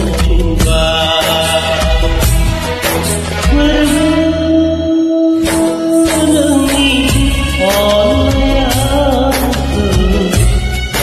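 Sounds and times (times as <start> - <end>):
karaoke backing track with bass: 0.0 - 11.0.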